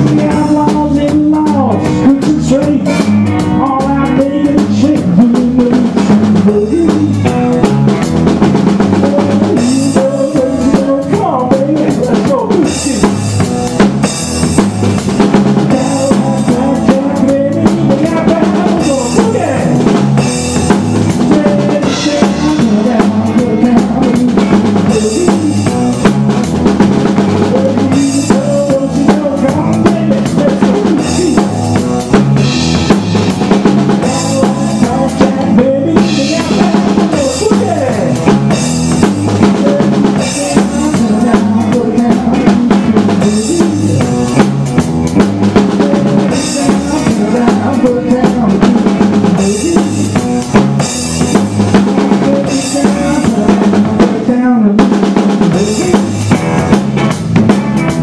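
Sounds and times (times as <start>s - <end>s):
drum kit beat: 0.0s - 58.0s
electric guitars: 0.0s - 58.0s
live country-rock band: 0.0s - 58.0s.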